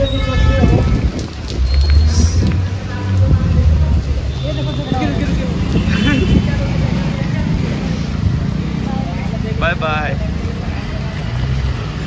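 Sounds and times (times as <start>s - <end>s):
vehicle engine rumbling: 0.0s - 12.0s
people talking: 2.0s - 8.1s.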